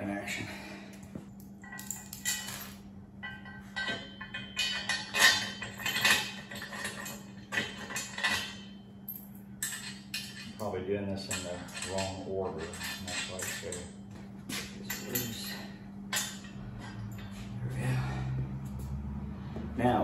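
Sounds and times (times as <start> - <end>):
steady low hum: 0.0 - 20.0
metal parts clanking: 1.6 - 17.8.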